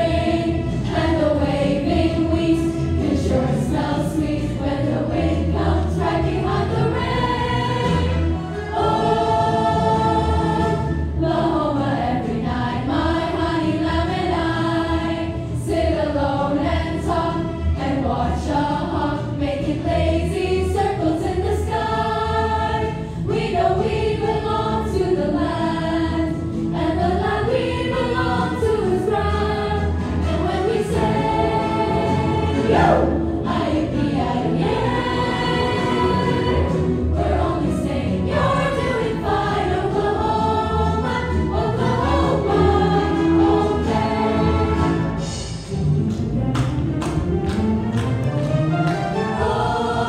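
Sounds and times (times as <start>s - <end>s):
chorus of young voices singing: 0.0s - 45.3s, 49.1s - 50.0s
instrumental accompaniment: 25.7s - 50.0s.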